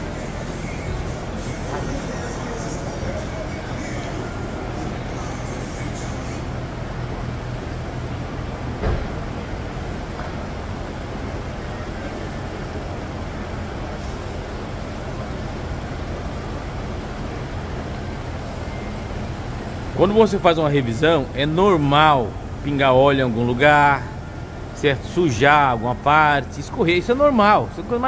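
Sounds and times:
continuous noise: 0.0 - 28.0
low mechanical hum: 0.0 - 28.0.

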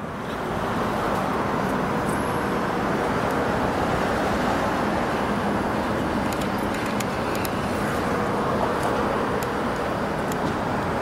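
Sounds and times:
passing cars: 0.0 - 11.0.

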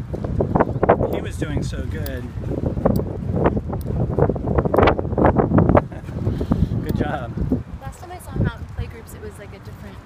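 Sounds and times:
wind gusting on microphone: 0.0 - 10.0.

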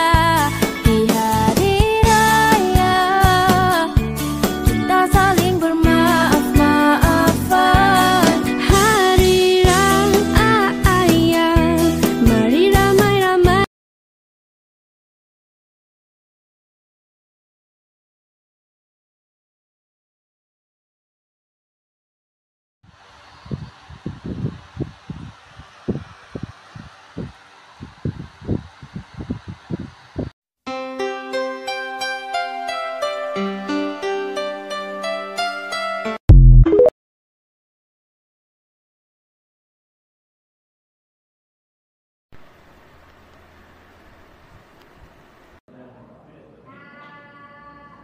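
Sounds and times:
music: 0.0 - 13.7, 30.7 - 36.9
steady hiss: 42.4 - 45.6.

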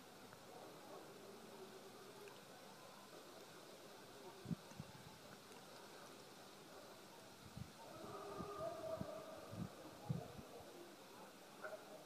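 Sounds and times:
background hiss: 0.0 - 12.0
faint steady tone: 0.0 - 12.0.

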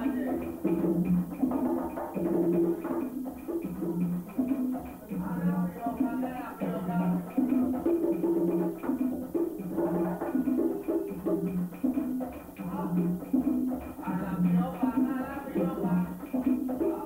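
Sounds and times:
conga drums playing: 0.0 - 17.0.

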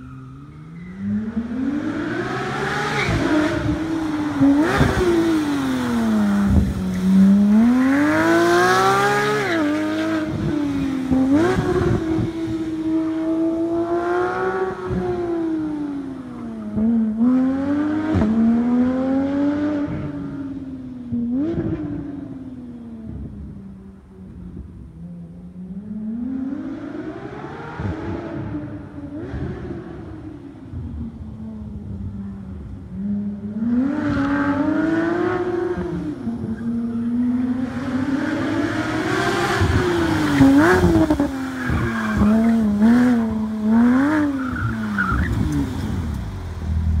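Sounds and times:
sports car engine revving: 1.0 - 22.3, 32.6 - 47.0.

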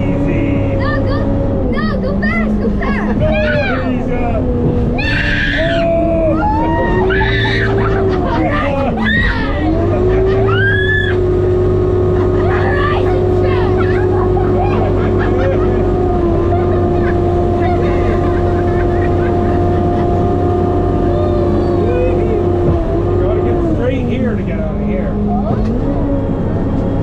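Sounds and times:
diesel engine whine and hum: 0.0 - 27.0
girl laughing and squealing: 0.8 - 4.0, 5.0 - 11.3.

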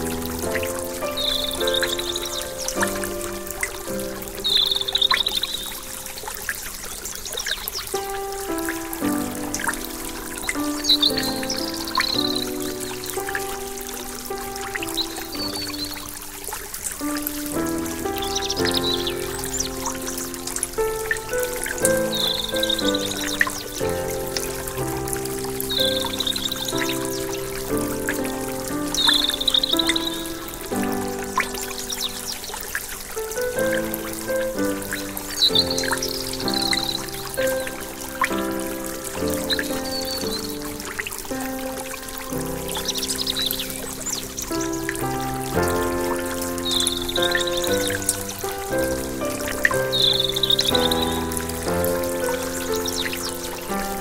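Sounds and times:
calm instrumental music: 0.0 - 54.0
stream rushing over rocks: 0.0 - 54.0.

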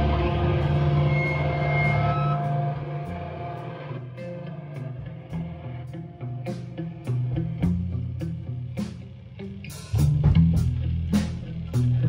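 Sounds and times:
electric guitars and bass droning chord: 0.0 - 12.0.

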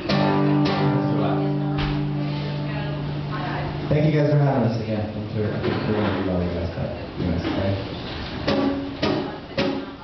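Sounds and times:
acoustic guitar strums: 0.0 - 2.7, 7.4 - 10.0.

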